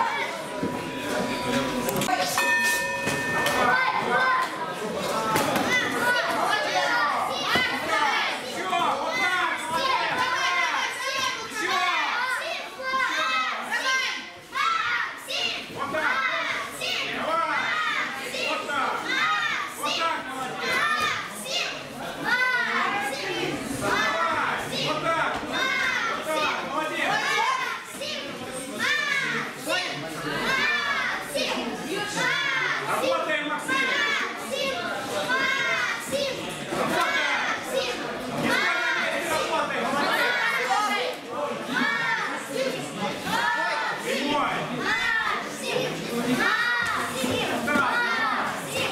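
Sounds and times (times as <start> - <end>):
children shouting: 3.0 - 48.9.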